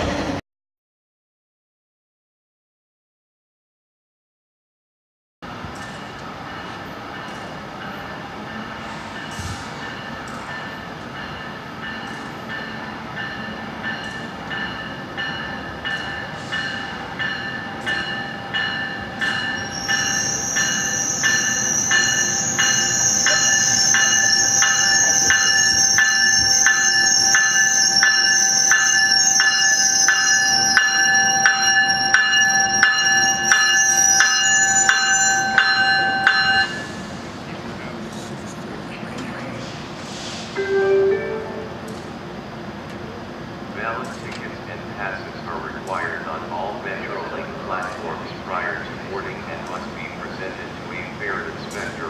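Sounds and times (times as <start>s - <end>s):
train bell ringing: 5.8s - 37.1s, 40.6s - 42.0s
high-pitched brake squeal: 19.3s - 37.0s.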